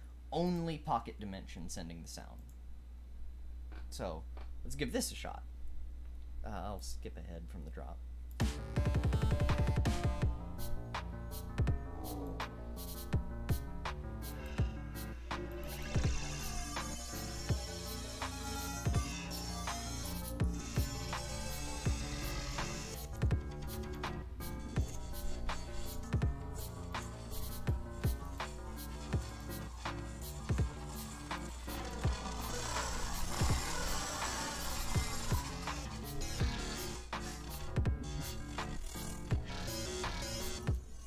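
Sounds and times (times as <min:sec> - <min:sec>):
granular electronic dance music: 0:08.4 - 0:41.0.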